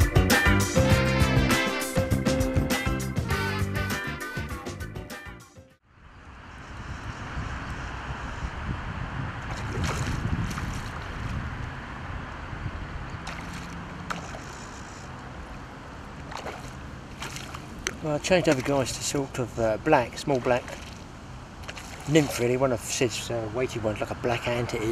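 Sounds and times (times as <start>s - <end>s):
wind noise on microphone: 5.9s - 15.2s
fish splashing at water surface: 9.5s - 11.1s, 13.2s - 14.7s, 16.2s - 19.0s, 20.3s - 22.5s.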